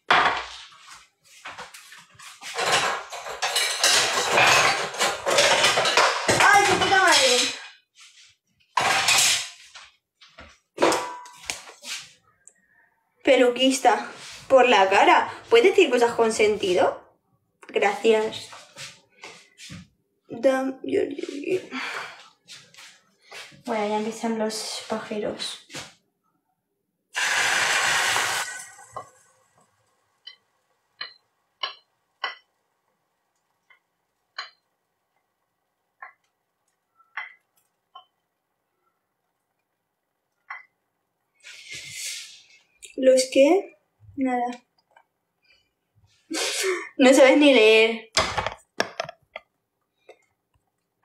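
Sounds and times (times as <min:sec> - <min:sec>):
dishes and cutlery clattering: 0:02.4 - 0:07.7, 0:08.8 - 0:09.6, 0:10.8 - 0:11.5
loud steady hiss: 0:27.2 - 0:28.9.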